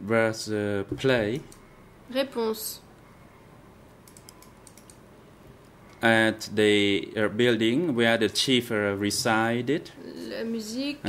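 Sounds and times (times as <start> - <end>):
keyboard typing: 4.0 - 5.0.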